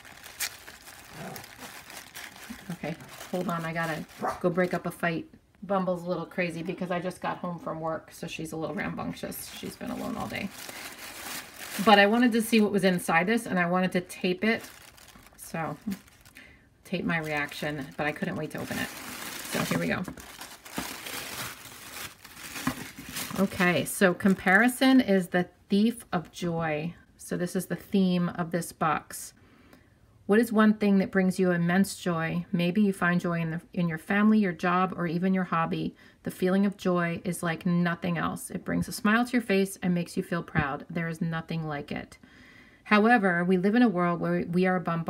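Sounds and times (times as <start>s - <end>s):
tissue paper rustling: 0.0s - 4.8s, 9.2s - 13.2s, 14.2s - 24.7s.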